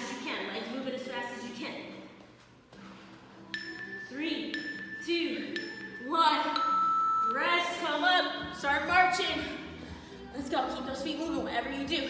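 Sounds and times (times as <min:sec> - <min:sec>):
high electronic countdown beep: 0:03.5 - 0:08.4.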